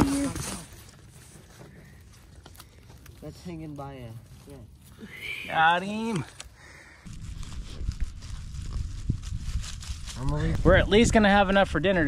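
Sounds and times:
rustling in dry leaves: 0:00.0 - 0:11.2.

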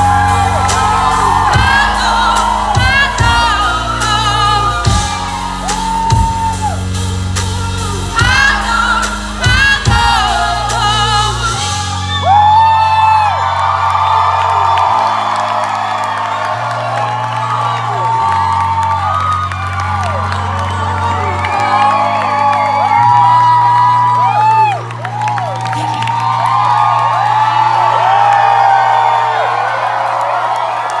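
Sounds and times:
live pop band playing: 0:00.0 - 0:29.4
crowd whooping and cheering: 0:00.0 - 0:31.0.

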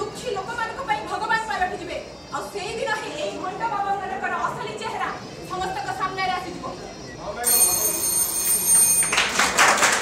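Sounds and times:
high-pitched steady ringing: 0:06.8 - 0:09.3
audience applause: 0:09.1 - 0:10.0.

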